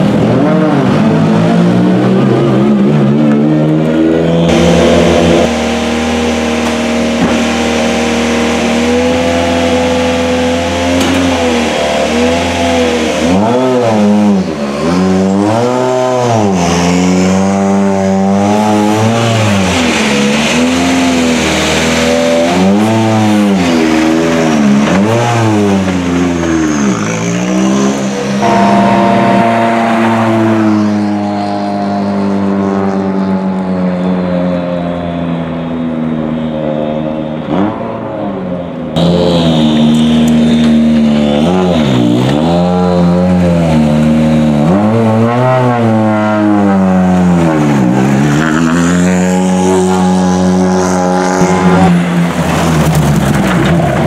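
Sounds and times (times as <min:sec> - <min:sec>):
rally car engine revving: 0:00.0 - 0:54.0.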